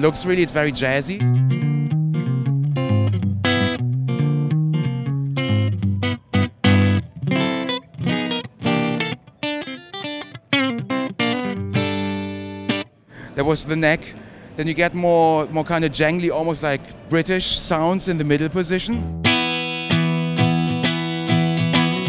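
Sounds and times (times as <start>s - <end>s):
jazzy electric guitar: 1.0s - 13.0s, 19.0s - 22.0s.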